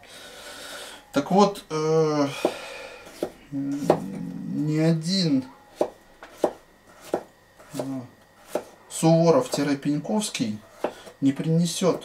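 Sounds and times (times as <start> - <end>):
knife slicing on cutting board: 5.8 - 8.7.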